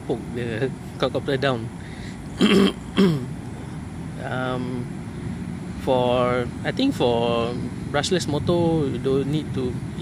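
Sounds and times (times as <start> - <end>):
man coughing harshly: 2.4 - 3.3.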